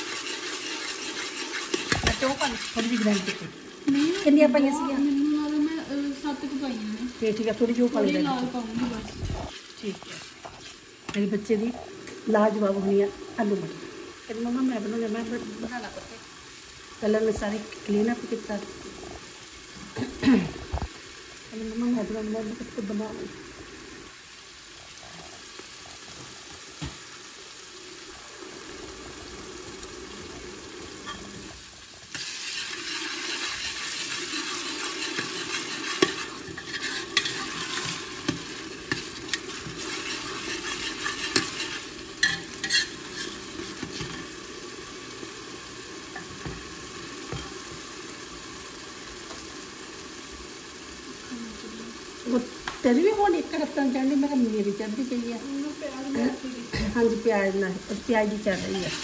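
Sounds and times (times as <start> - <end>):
spoon scraping a pan: 0.0 - 4.3, 9.5 - 11.3, 31.0 - 31.4, 32.1 - 44.4, 58.4 - 59.0
curry sizzling in a pan: 0.0 - 59.0.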